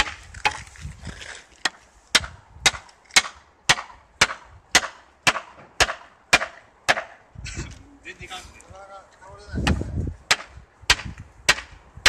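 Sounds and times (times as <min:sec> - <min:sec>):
hand axe striking wood: 0:00.0 - 0:00.7, 0:01.6 - 0:07.2, 0:09.7 - 0:11.8.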